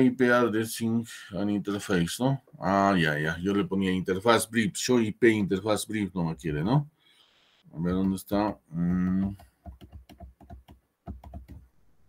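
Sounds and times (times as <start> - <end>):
keyboard keys clicking: 9.1 - 11.6.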